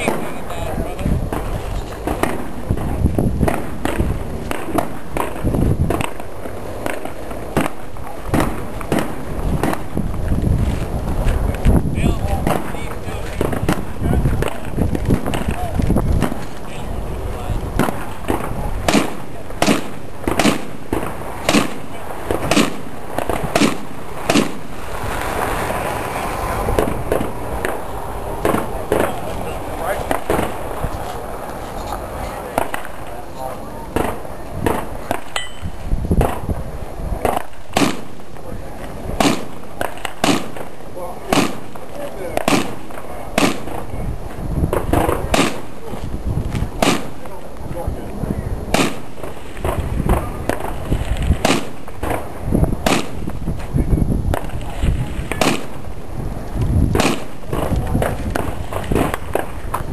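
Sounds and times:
gunshots: 0.0 - 10.0, 12.1 - 25.6, 26.4 - 30.8, 32.4 - 33.2, 33.9 - 35.4, 36.2 - 36.6, 37.2 - 43.9, 44.7 - 45.9, 46.8 - 47.4, 48.7 - 53.3, 54.3 - 55.9, 56.9 - 59.7.

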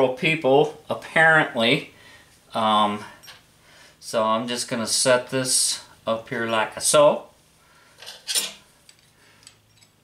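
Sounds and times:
metal tools clinking on steel: 8.0 - 10.0.

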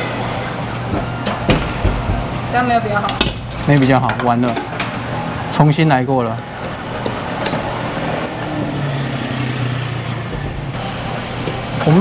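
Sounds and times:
claw machine mechanical hum: 0.0 - 12.0.

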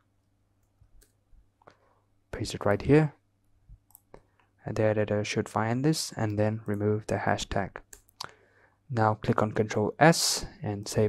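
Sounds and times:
computer mouse clicks: 0.6 - 1.8, 3.8 - 4.5, 7.8 - 8.3.

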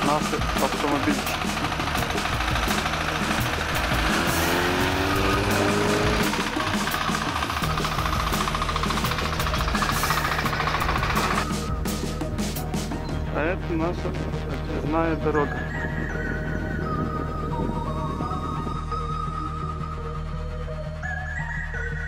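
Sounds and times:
small engine chugging: 0.0 - 11.7
music: 0.0 - 22.0.

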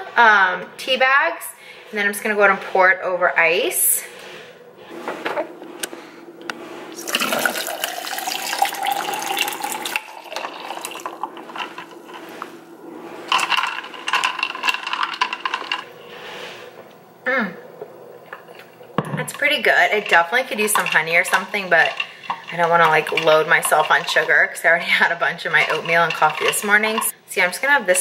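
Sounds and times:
tea pouring into tumbler of ice: 7.0 - 12.3, 13.2 - 15.9, 19.4 - 24.6, 25.5 - 27.1.

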